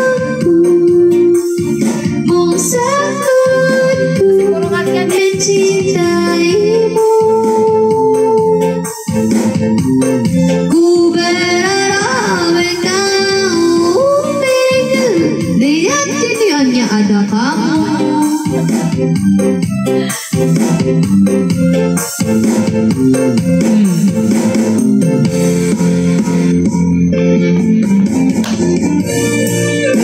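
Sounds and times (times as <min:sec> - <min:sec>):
woman singing into a microphone: 0:00.0 - 0:09.1, 0:10.4 - 0:18.7, 0:29.0 - 0:30.0
keyboard backing track: 0:00.0 - 0:30.0.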